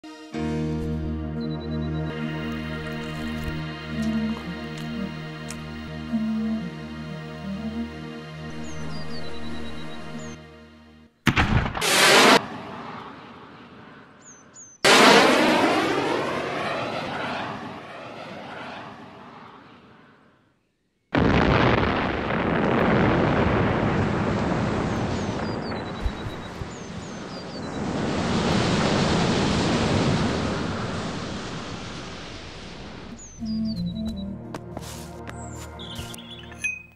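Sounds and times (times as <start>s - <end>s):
long rumbling blast: 11.3s - 14.2s, 14.8s - 20.1s, 21.2s - 33.7s
explosions: 11.3s - 20.2s, 21.2s - 33.2s.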